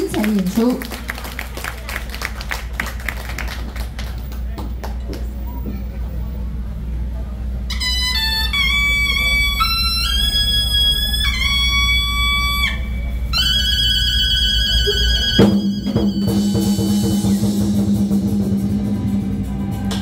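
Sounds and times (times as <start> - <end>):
keyboard drone: 7.8 - 20.0
low sustained tone: 8.9 - 20.0
drums and cymbals crashing: 14.8 - 20.0.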